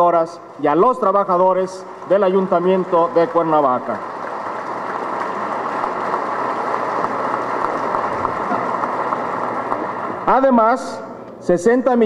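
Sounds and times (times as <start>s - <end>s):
audience applauding: 1.9s - 10.2s.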